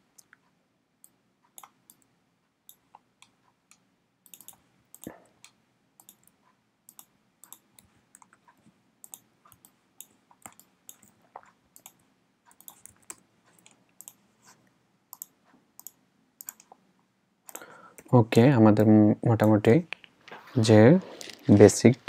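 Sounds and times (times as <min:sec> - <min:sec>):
computer mouse clicks: 0:00.1 - 0:16.8, 0:17.5 - 0:18.1.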